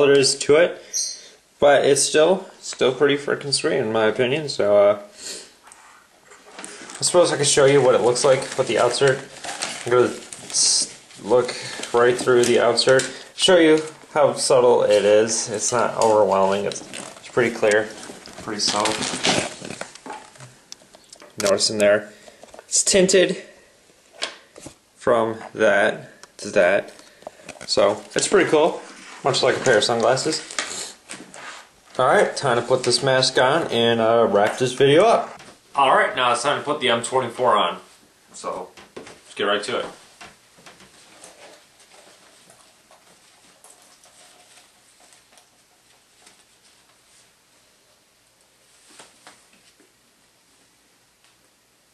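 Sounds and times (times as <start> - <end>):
rubbing and rustling handling noise: 5.6 - 50.7.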